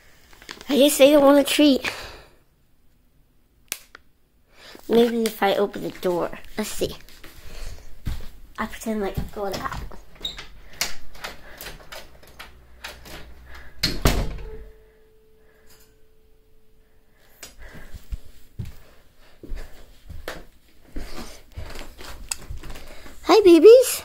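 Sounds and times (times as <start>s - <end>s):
faint steady tone: 14.3s - 17.5s.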